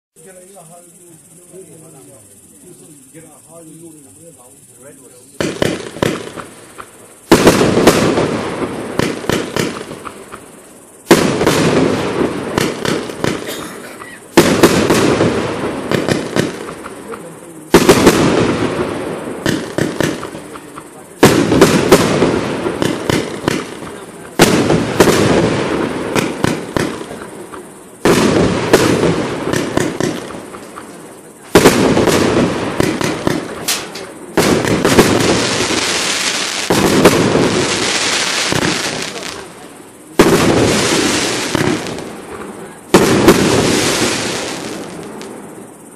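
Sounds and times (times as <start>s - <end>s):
fireworks crackling: 0.2s - 45.9s
fireworks bangs: 4.1s - 45.9s.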